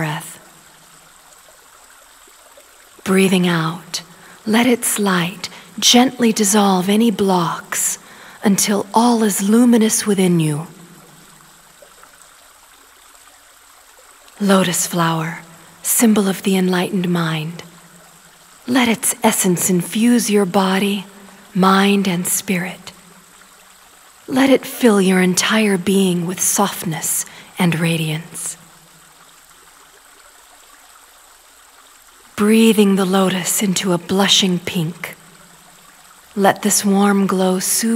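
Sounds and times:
faint flowing water: 0.0s - 37.9s.

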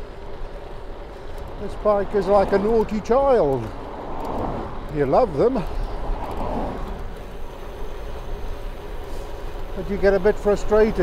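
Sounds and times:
road noise: 0.0s - 11.0s
car passing: 0.7s - 11.0s
wind rushing over microphone: 3.8s - 7.3s.

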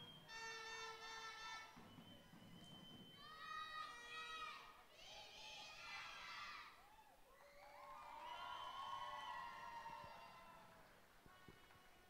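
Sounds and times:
children shouting and cheering: 3.2s - 12.0s.

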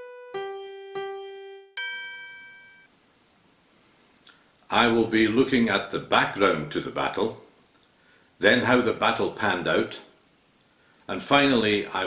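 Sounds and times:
keyboard note ringing: 0.0s - 2.9s.

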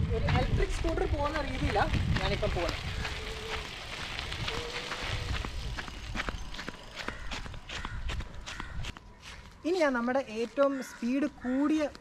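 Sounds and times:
bicycle tyres on gritty dirt: 0.0s - 12.0s.

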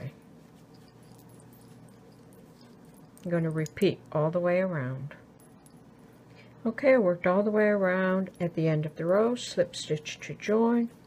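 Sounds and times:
faint low room hum: 0.0s - 11.0s.

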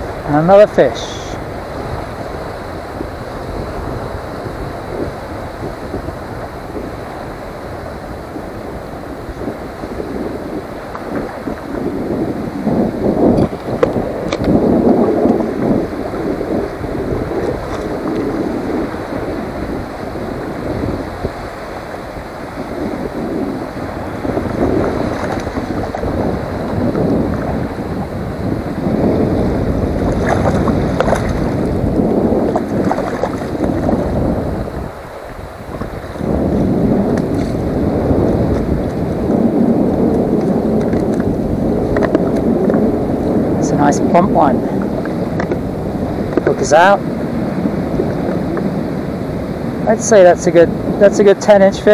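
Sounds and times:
water lapping: 0.0s - 51.9s
wind buffeting microphone: 0.0s - 51.9s
fish splashing: 32.5s - 33.9s.

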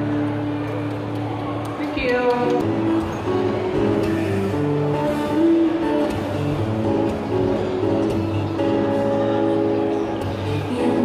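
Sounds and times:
acoustic guitar through speaker: 0.0s - 11.0s.

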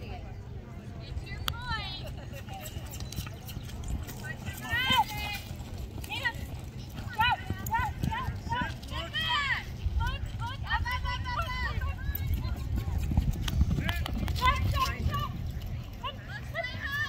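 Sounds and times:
horse hoofbeats on dirt: 1.5s - 17.0s.

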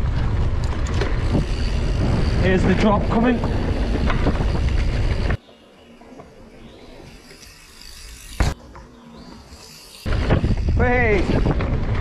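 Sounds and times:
wind and bike riding noise: 0.0s - 12.0s.

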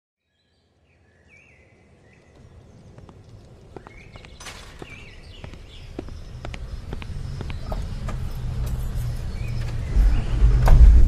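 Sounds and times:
bird chirping: 0.2s - 11.0s
low rumble: 7.5s - 11.0s.

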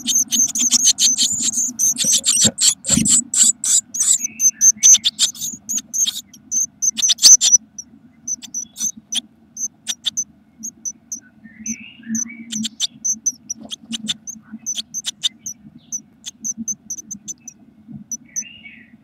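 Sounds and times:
nestlings begging calls: 0.0s - 18.8s
low steady hum: 0.0s - 19.0s.

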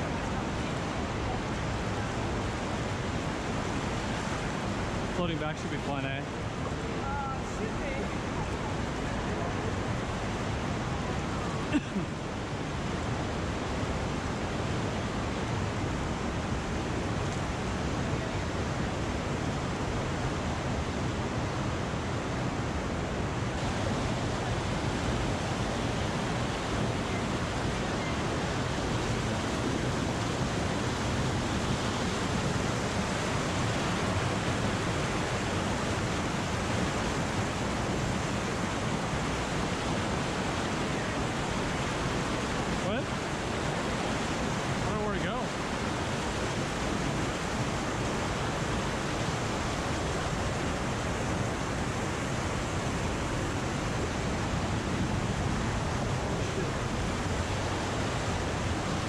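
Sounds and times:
river water rushing over boulders: 0.0s - 59.0s.

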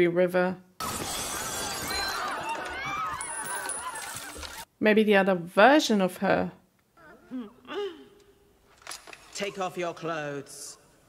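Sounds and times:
glass and crockery shattering: 0.8s - 4.6s.

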